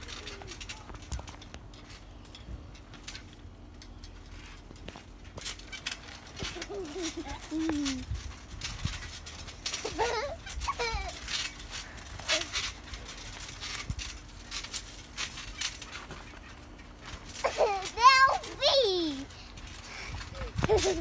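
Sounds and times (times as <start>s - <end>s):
children squealing and giggling: 6.4s - 8.0s, 9.8s - 11.3s, 20.3s - 21.0s.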